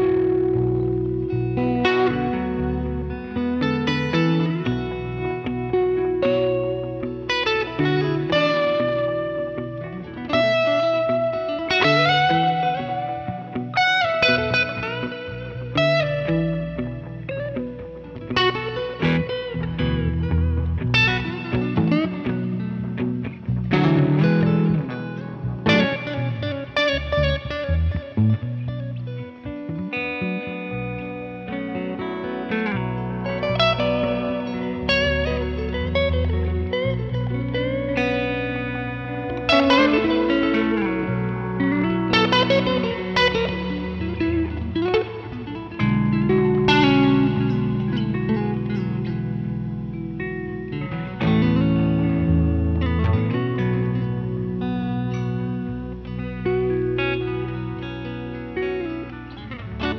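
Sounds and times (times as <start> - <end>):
electric guitars jamming: 0.0 - 59.9.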